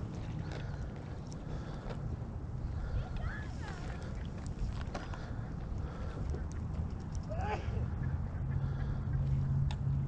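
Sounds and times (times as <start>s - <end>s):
waterfowl calls: 7.5s - 9.6s.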